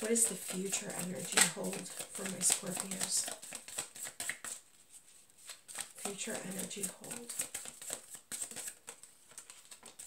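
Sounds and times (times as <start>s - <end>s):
cards being shuffled: 0.1s - 10.0s.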